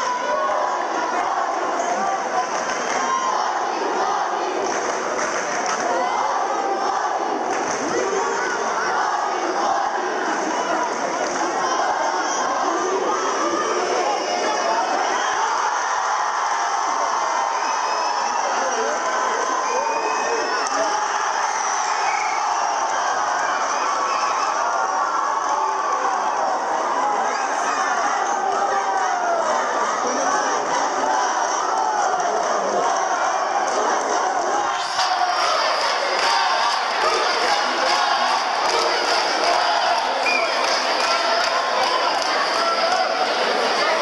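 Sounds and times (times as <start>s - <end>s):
crowd shouting and cheering: 0.0s - 44.0s.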